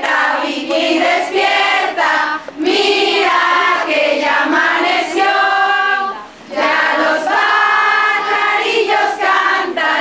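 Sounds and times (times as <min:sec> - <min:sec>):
women's voices singing held notes: 0:00.0 - 0:10.0.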